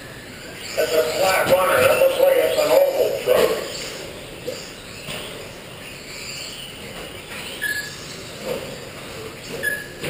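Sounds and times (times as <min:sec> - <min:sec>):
brief beep: 0:07.6 - 0:07.9, 0:09.6 - 0:10.0.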